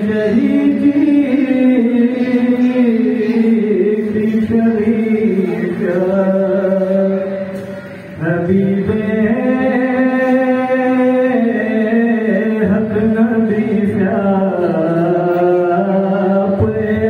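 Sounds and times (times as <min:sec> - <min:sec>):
person chanting long sung notes: 0:00.0 - 0:17.0.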